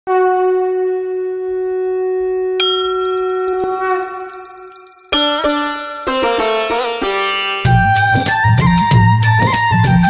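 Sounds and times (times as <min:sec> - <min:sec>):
conch shell blown: 0:00.1 - 0:04.6
small brass bell ringing: 0:02.6 - 0:08.4.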